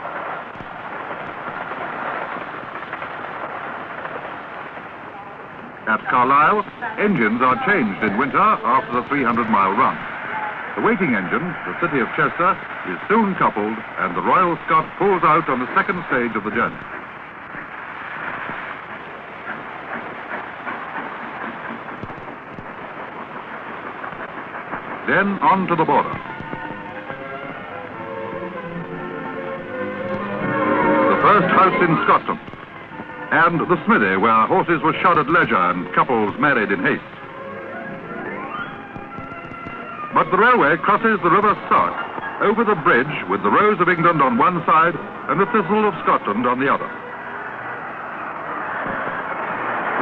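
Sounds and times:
steam locomotive pulling out: 0.0 - 50.0
train wheels on rails: 0.0 - 50.0.

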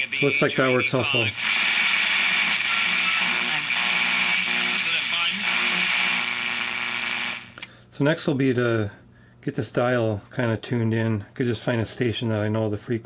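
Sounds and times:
radio voice: 0.0 - 6.7
radio hiss and static: 0.0 - 7.6.

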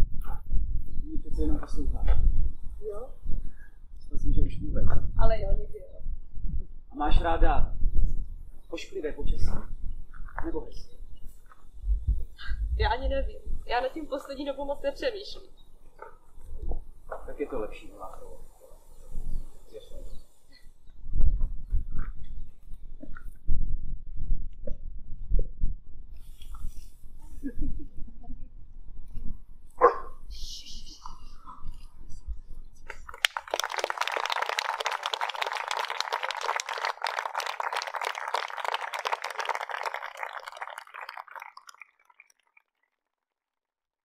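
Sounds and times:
microphone rumbling and buffeting: 0.0 - 15.4, 16.0 - 30.3
audience applauding: 33.1 - 42.6.

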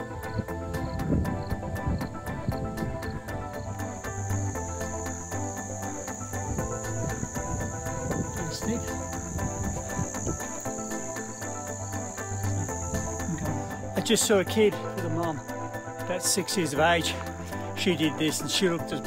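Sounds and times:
high-pitched insect drone: 0.0 - 19.0
soft background music: 0.0 - 19.0.

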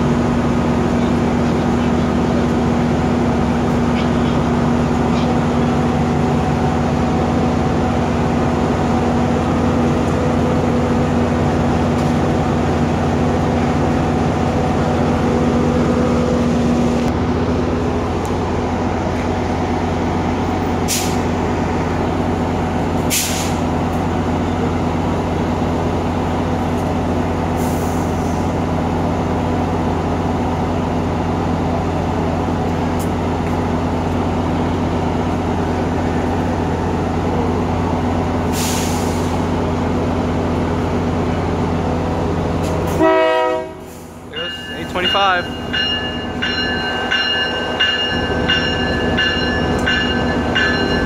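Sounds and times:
diesel locomotive idling: 0.0 - 51.0
short air hisses: 20.9 - 21.3, 23.1 - 23.6, 38.5 - 39.4.

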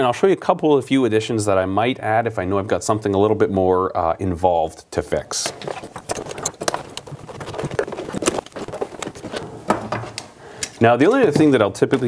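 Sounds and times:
metal tools clinking: 5.5 - 9.4.

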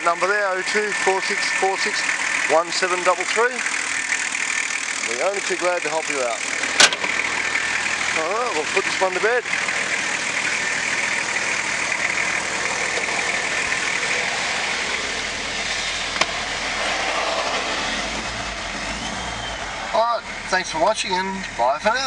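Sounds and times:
diesel engine idling: 0.0 - 22.0.

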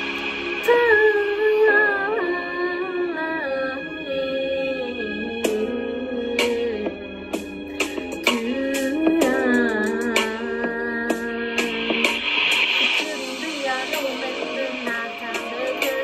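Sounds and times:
backing track: 0.0 - 16.0
woman singing pop melody: 0.0 - 16.0.

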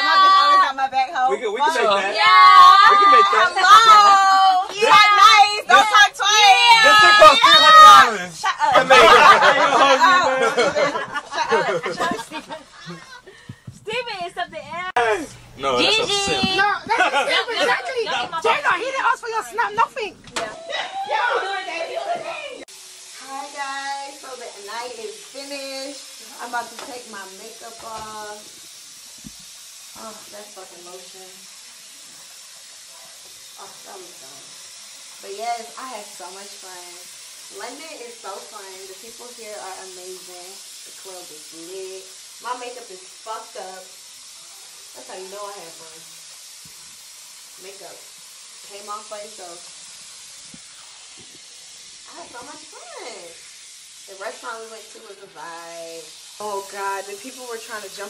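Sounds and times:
steady hiss: 0.0 - 58.0.

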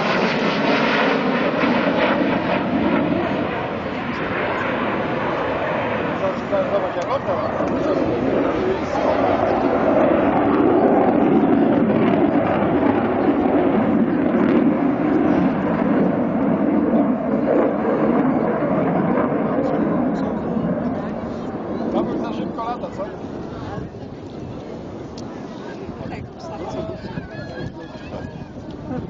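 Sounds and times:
jet engines roaring: 0.0 - 29.0.

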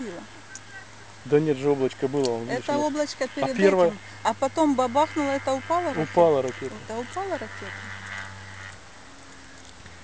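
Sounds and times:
faint hum and hiss: 0.0 - 10.0.

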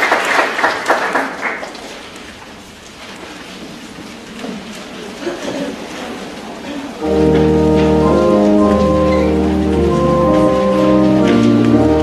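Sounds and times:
pipe organ chords: 7.0 - 12.0.

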